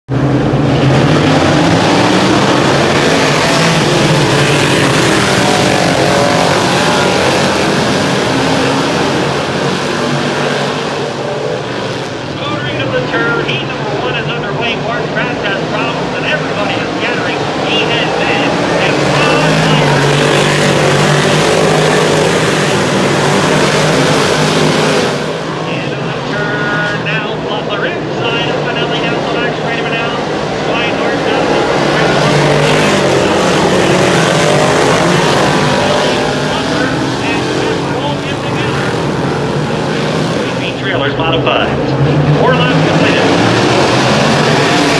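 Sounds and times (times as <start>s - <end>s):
race car engines running: 0.0s - 44.9s
voices talking: 0.6s - 24.4s, 25.4s - 44.9s.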